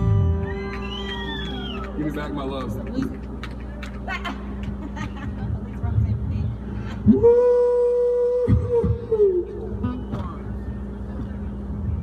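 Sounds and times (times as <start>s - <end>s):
steady low hum: 0.0s - 12.0s
people talking: 5.4s - 6.5s.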